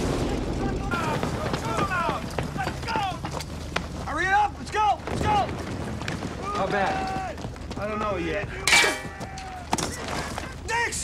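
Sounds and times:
men's raised voices: 6.4 - 11.0.

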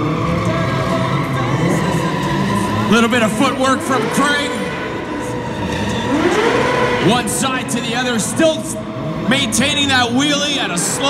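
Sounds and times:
motorcycle engine under throttle: 2.6 - 11.0.

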